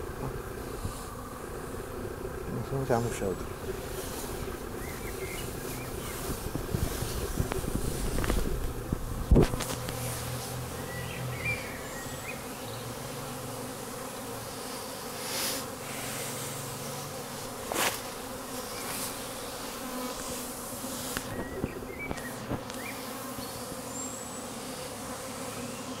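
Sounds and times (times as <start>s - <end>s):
honeybees buzzing: 0.0s - 26.0s.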